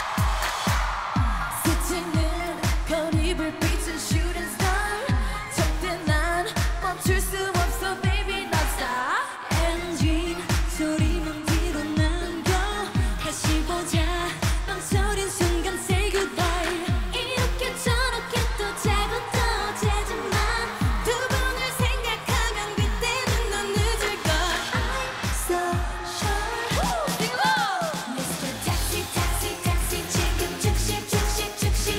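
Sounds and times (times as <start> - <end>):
steady kick drum: 0.0 - 8.8, 9.5 - 27.4, 28.2 - 31.9
girl group singing dance-pop: 0.0 - 31.9.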